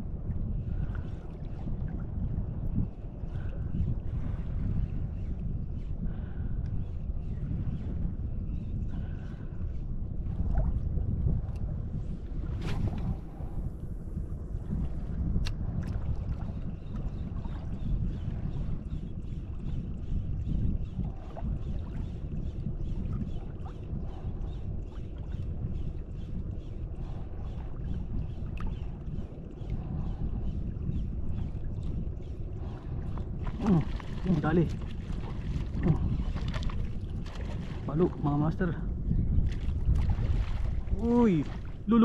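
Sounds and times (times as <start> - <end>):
wind buffeting microphone: 0.0 - 42.0
water sloshing around legs: 33.3 - 38.1.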